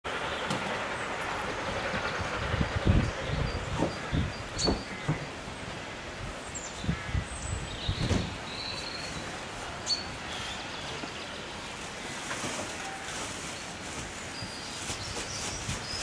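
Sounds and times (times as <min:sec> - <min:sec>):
distant steam locomotive: 0:00.0 - 0:16.0
wind buffeting microphone: 0:00.1 - 0:09.5, 0:14.4 - 0:16.0
birds chirping: 0:00.1 - 0:16.0.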